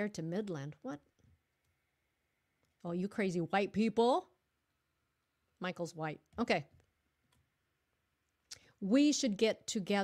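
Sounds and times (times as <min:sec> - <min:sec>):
woman speaking: 0:00.0 - 0:01.2, 0:02.8 - 0:04.4, 0:05.5 - 0:06.8, 0:08.5 - 0:10.0.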